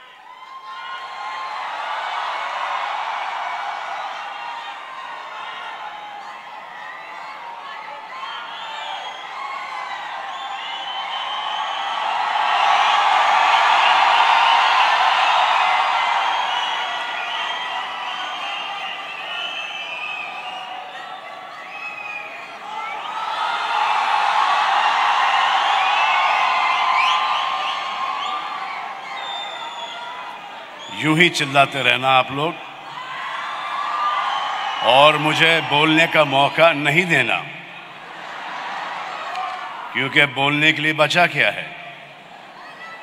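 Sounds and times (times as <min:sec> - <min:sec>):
arena crowd cheering and screaming: 0:00.0 - 0:43.0.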